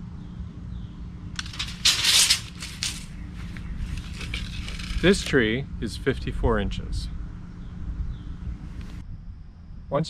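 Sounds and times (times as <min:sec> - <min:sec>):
steady low hum: 0:00.0 - 0:10.0
handling noise rustling and clicking: 0:01.4 - 0:05.4.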